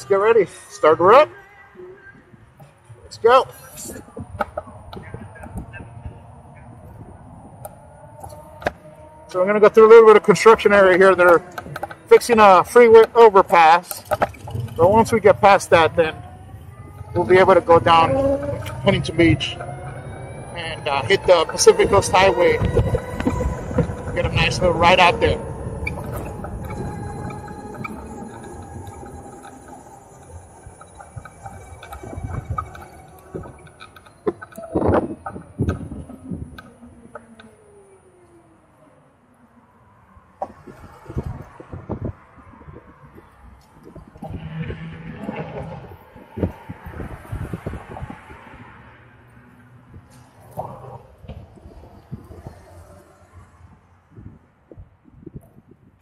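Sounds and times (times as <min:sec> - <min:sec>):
surrounding traffic: 0:00.0 - 0:56.0
electric motorcycle motor whine: 0:14.2 - 0:37.8.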